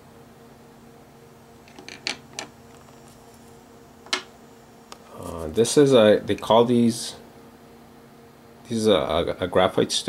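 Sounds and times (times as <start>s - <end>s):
faint steady hum: 0.0s - 10.0s.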